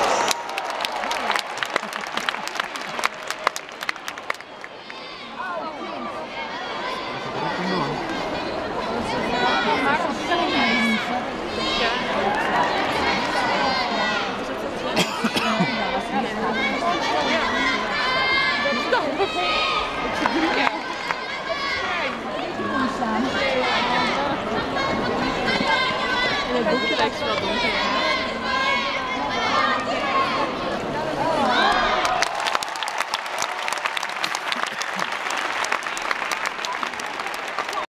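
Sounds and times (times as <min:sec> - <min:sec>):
audience applauding: 0:00.0 - 0:05.0, 0:20.1 - 0:21.2, 0:31.6 - 0:37.9
crowd chatter: 0:00.0 - 0:37.9.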